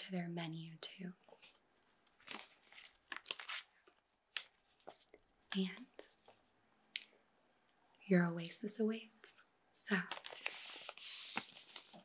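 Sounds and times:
paper rustling and crinkling: 0:01.3 - 0:05.2, 0:10.1 - 0:12.0.

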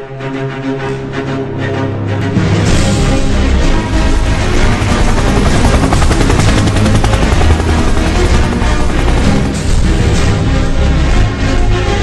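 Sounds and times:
loud background music: 0:00.0 - 0:12.0
helicopter rotor chopping: 0:03.3 - 0:11.1.

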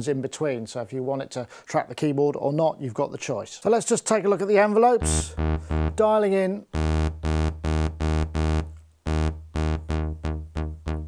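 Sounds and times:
synth bass line repeating note: 0:05.0 - 0:06.2, 0:06.8 - 0:11.0.

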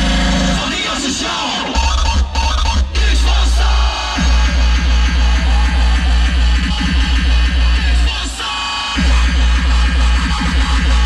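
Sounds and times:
hardstyle dance music: 0:00.0 - 0:11.0.

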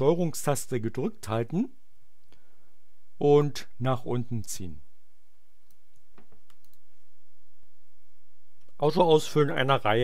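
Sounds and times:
low steady hum: 0:00.0 - 0:10.0
computer mouse clicks: 0:05.6 - 0:06.9.

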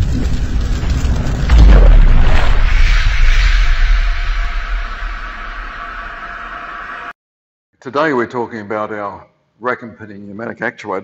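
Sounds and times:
cinematic boom: 0:00.0 - 0:07.1
deep rumble: 0:00.0 - 0:07.1.

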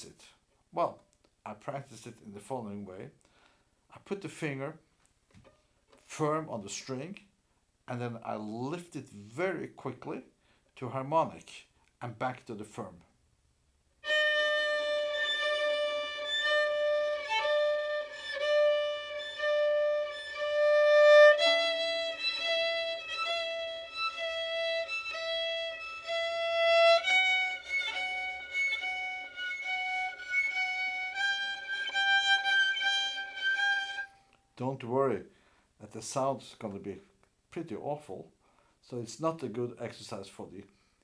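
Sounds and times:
violin long bowed notes: 0:14.0 - 0:34.3.

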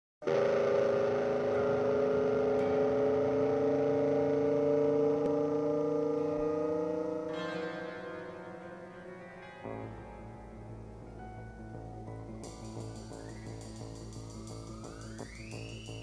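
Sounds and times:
long held music chord: 0:00.5 - 0:13.3.

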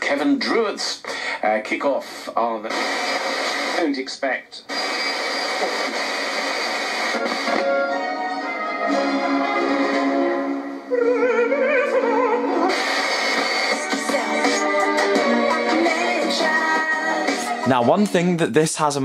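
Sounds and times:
song on radio speaker: 0:02.0 - 0:19.0.

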